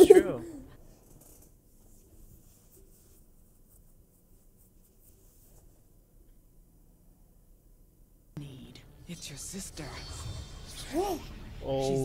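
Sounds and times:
faint soft rustles: 0.8 - 6.4.

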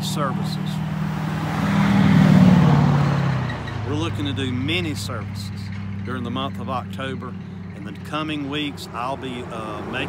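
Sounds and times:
vehicle passing by: 0.0 - 10.0.

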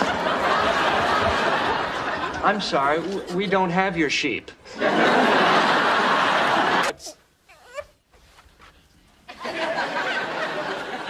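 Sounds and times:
baby whimpering: 7.0 - 8.0.

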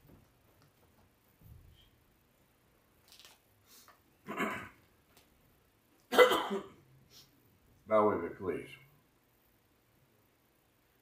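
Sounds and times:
man clearing throat with cough: 4.2 - 4.8, 6.1 - 6.8.

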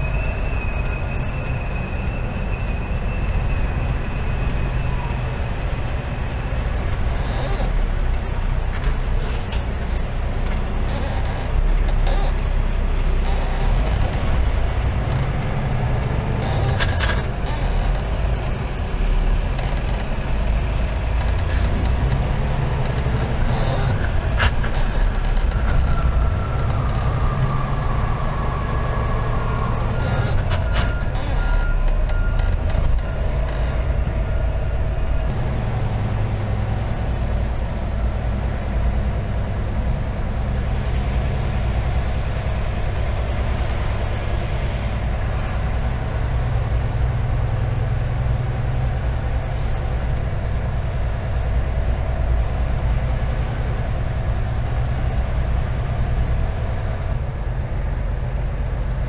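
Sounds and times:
diesel truck engine drone: 0.0 - 59.0.

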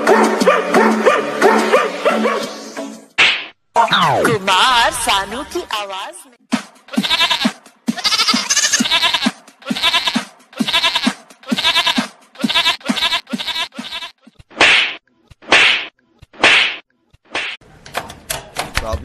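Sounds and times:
boy bleating like a goat: 6.9 - 14.2.

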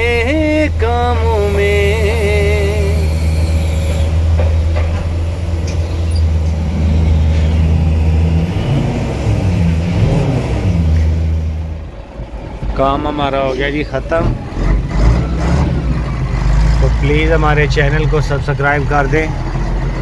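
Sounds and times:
large vehicle engine rumbling: 0.0 - 20.0
man speaking: 12.7 - 14.4, 16.8 - 19.4.

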